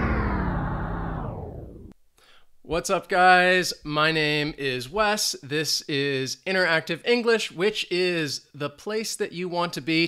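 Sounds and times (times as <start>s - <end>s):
rock guitar chord ringing out: 0.0s - 1.9s.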